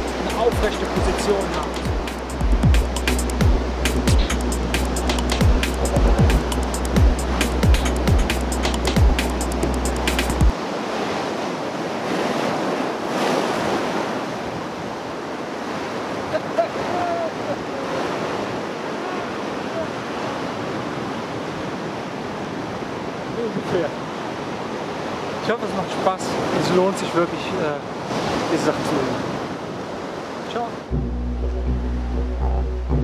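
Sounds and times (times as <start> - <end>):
ocean surf breaking on beach: 0.0 - 2.3, 5.6 - 30.9
background music with drum beats: 0.0 - 10.5.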